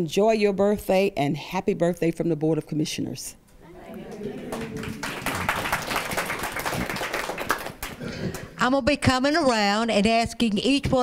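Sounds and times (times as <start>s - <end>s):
voices: 3.6s - 5.2s
audience clapping: 3.6s - 8.5s.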